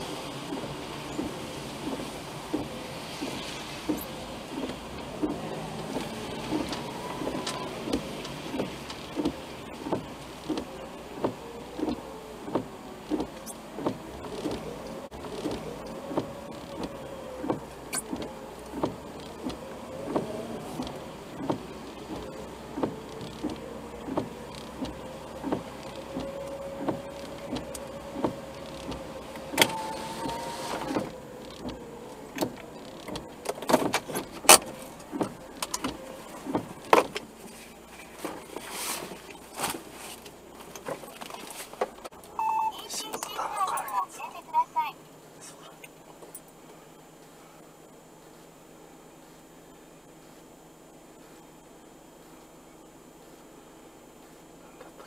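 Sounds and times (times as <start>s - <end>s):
car interior hum: 0.0s - 55.0s.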